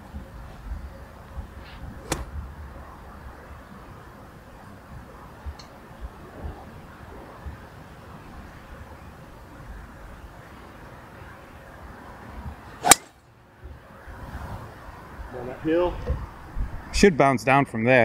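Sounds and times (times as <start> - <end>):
wind noise on microphone: 0.0 - 4.0, 4.7 - 10.4, 15.9 - 17.0
golf ball struck with crack: 2.0 - 2.4, 12.8 - 13.2.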